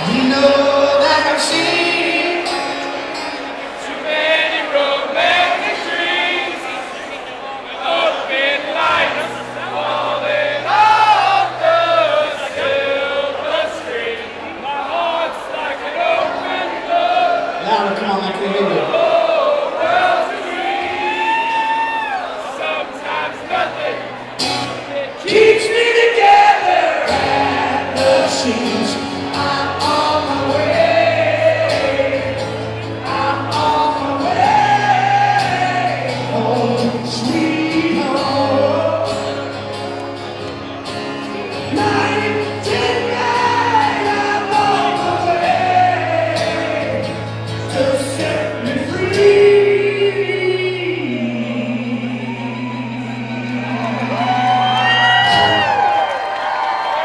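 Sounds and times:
man singing: 0.0 - 3.1, 25.1 - 39.5, 41.6 - 54.8
strummed acoustic guitar: 0.0 - 5.9, 23.5 - 52.0
audience singing along: 0.0 - 57.0.

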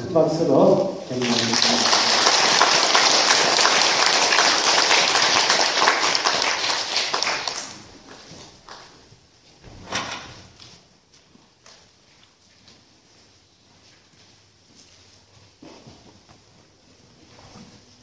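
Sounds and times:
crowd applauding: 1.0 - 9.0.

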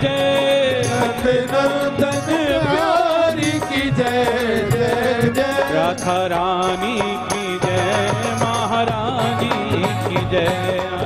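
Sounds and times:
hand-drum strikes: 0.0 - 11.0
harmonium melody: 0.0 - 11.0.

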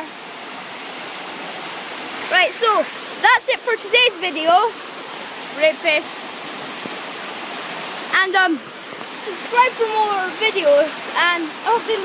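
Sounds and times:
waterfall pouring: 0.0 - 12.0.

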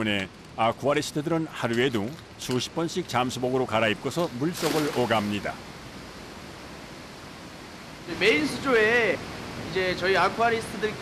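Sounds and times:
water rushing in aquarium: 4.4 - 5.5.

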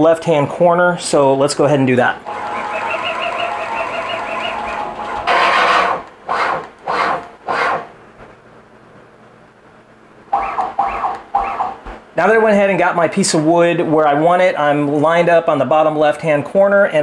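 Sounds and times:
stepper motors whining: 2.3 - 7.9
pitched jog steps: 10.4 - 12.2.

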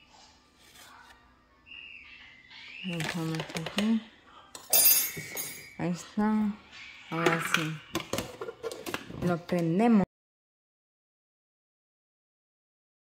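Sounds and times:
kitchenware clattering: 2.9 - 9.8.

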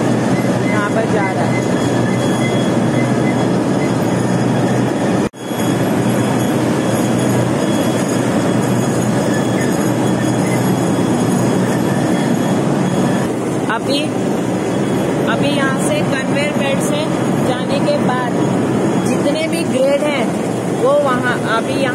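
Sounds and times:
processing machinery rumbling: 0.0 - 21.9.

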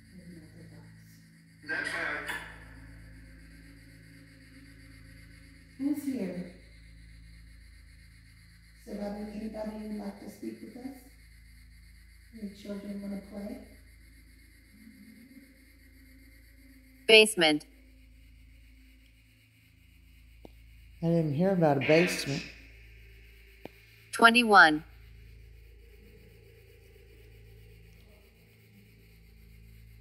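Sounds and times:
faint electronic hum: 0.0 - 30.0
low indistinct voices: 1.7 - 2.6.

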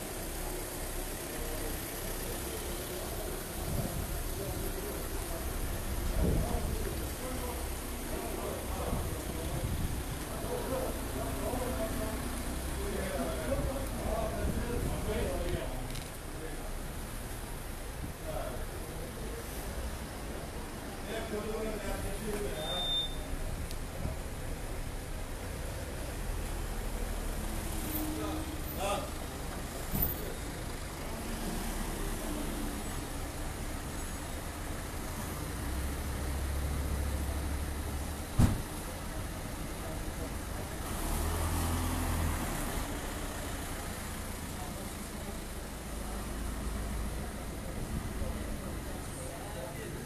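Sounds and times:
cars driving slowly past: 0.0 - 50.0
sharp knock: 38.4 - 38.6.

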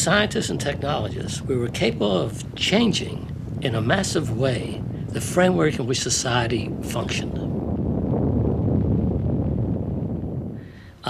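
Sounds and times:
low blast rumble: 0.0 - 11.0
wind rushing: 0.0 - 11.0.

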